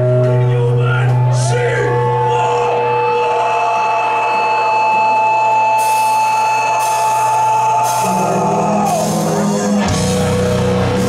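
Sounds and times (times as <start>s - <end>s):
long held high notes: 0.0s - 11.0s.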